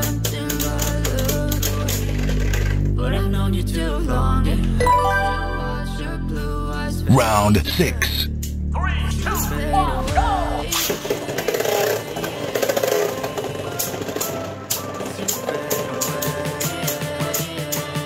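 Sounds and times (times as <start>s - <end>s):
pop song backing music: 0.0s - 8.4s, 9.1s - 18.0s
person speaking: 7.0s - 8.3s.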